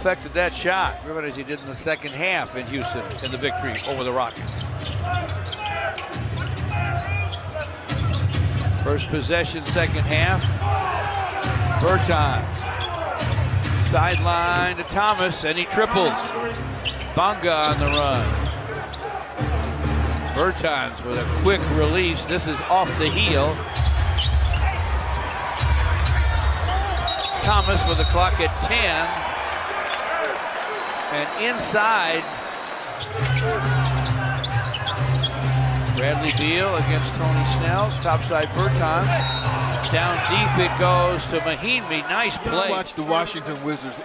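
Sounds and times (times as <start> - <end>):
crowd noise: 0.0 - 44.0.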